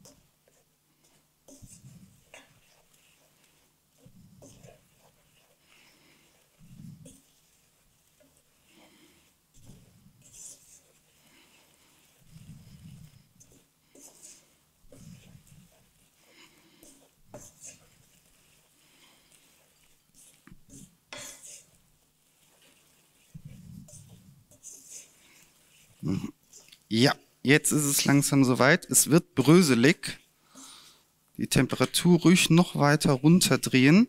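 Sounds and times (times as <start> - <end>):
spatula scraping a pan: 0.0 - 26.9
person making low vocal sounds: 26.0 - 26.4.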